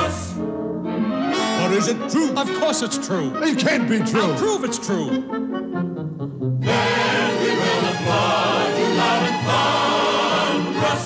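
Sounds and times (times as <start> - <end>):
choir singing: 0.0 - 0.6, 6.6 - 11.0
orchestra: 0.0 - 11.0.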